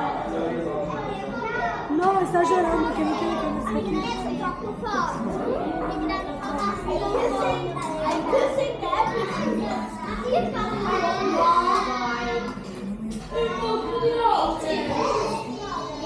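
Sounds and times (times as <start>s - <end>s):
children's voices: 0.0s - 16.0s
crowd babble: 0.0s - 16.0s.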